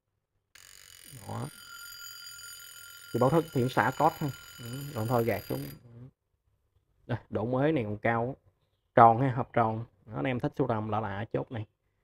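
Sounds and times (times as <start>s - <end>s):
alarm clock ringing: 0.6s - 5.8s.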